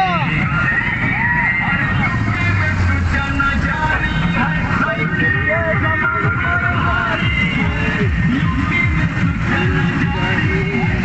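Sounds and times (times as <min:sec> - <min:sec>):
music playing: 0:00.0 - 0:11.0
voices calling out: 0:00.0 - 0:11.0.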